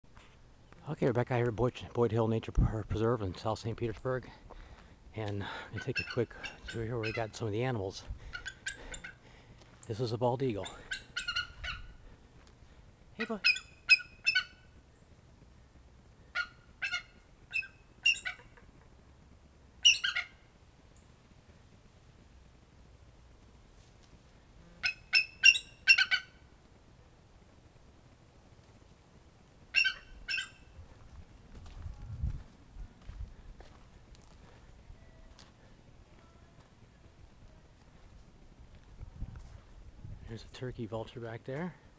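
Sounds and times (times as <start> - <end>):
eagle squeaky calls: 5.8 - 7.5, 8.2 - 9.2, 9.8 - 12.0, 13.2 - 14.8, 16.3 - 18.8, 19.8 - 20.5, 24.8 - 26.4, 29.7 - 30.8
high bird chirps: 19.8 - 20.3, 24.8 - 26.2.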